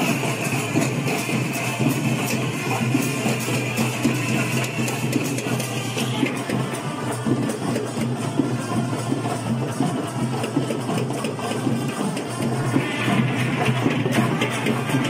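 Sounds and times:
procession music with rapid drumming: 0.0 - 15.0.

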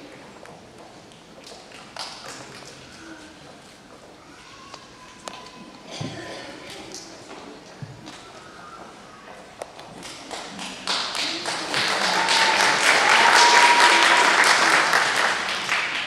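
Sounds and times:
audience applauding: 10.1 - 16.0.

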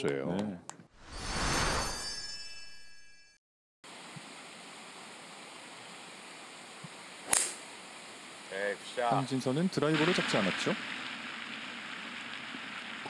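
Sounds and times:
faint outdoor ambience: 3.9 - 13.0
golf club striking ball: 7.2 - 7.6.

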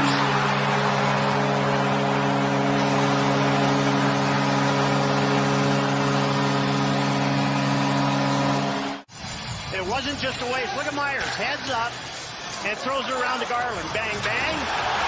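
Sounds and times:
crowd cheering: 0.0 - 9.0, 10.4 - 15.0
goal horn chord: 0.0 - 9.0.

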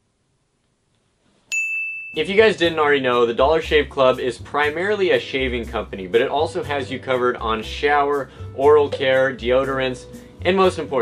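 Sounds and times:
high clear ding: 1.5 - 2.3.

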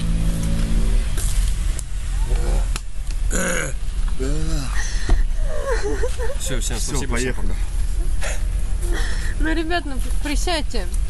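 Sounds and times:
steady low rumble: 0.0 - 11.0
man spitting: 3.3 - 3.8
man retching groan: 3.3 - 4.8.

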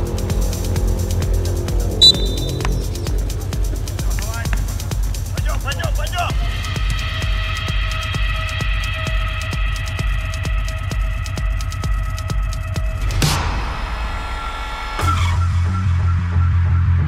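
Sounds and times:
electronic dance music: 2.0 - 3.2.

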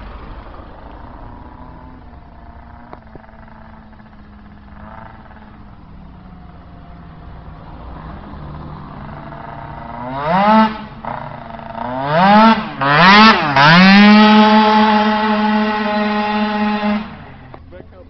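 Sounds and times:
moped engine accelerating: 0.0 - 18.0.

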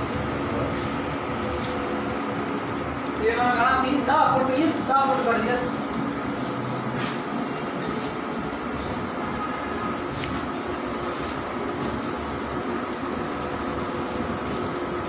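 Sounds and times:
printer carriage whirring: 0.0 - 15.0.

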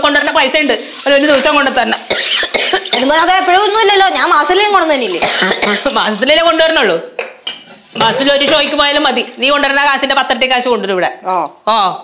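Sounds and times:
woman talking: 2.9 - 7.1, 8.0 - 12.0.

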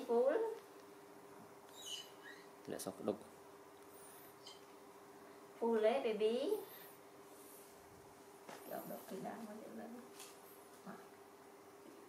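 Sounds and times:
steady low hum: 0.0 - 12.0
high squeak: 1.7 - 2.5.

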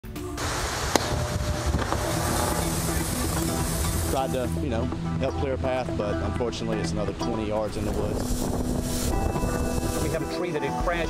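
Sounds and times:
low sustained music tones: 0.1 - 11.0
driving rain: 0.4 - 4.6
wind buffeting microphone: 7.6 - 10.2
storm wind: 7.8 - 10.2.

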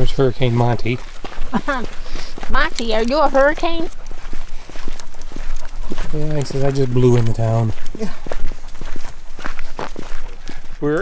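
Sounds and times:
footsteps on sandy dirt road: 0.0 - 11.0.

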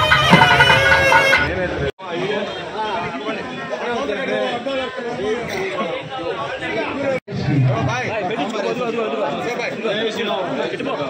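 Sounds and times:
crowd of men chattering: 1.5 - 11.0.

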